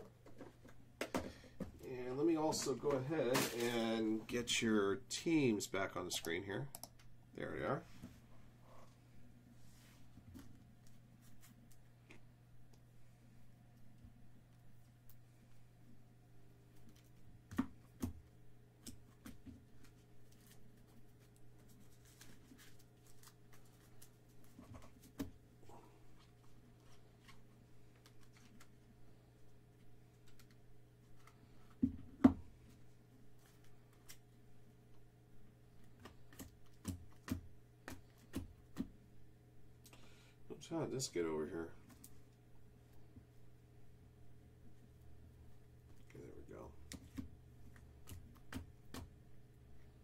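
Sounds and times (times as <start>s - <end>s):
cards clicking and tapping: 35.8s - 39.0s, 46.8s - 49.2s.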